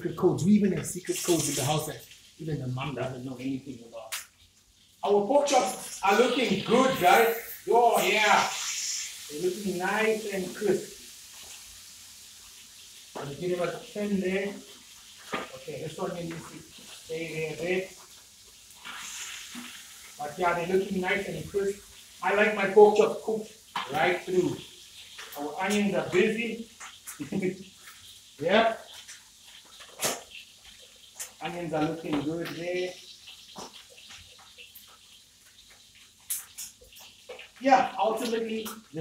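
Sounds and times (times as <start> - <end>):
meat sizzling in a hot pan: 3.4 - 39.0.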